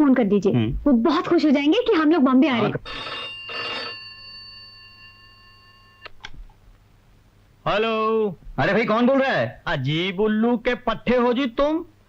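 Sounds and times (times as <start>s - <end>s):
telephone bell ringing: 2.6s - 6.1s.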